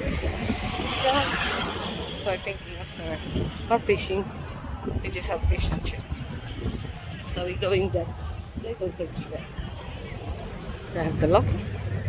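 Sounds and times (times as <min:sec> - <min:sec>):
wind rumble on microphone: 0:00.0 - 0:12.0
car driving past: 0:00.2 - 0:03.6.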